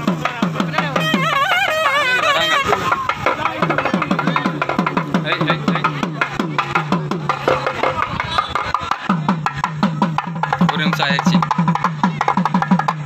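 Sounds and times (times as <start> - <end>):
crowd voices: 0.0 - 12.6
hand drums playing fast rhythm: 0.0 - 13.0.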